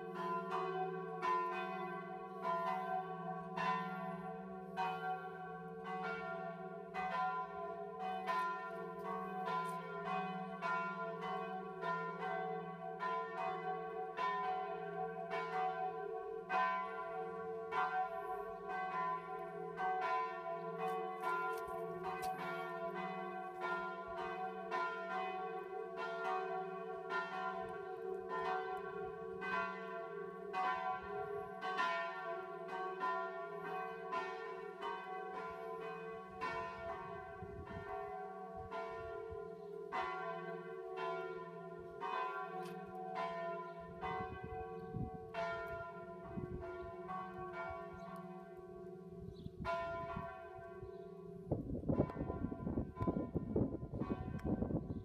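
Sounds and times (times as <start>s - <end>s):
church bells ringing: 0.0s - 55.0s.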